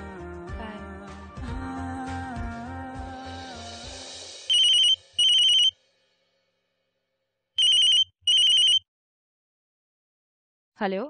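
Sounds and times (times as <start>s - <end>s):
music: 0.0s - 5.2s
phone ringing: 4.5s - 5.7s, 7.6s - 8.8s.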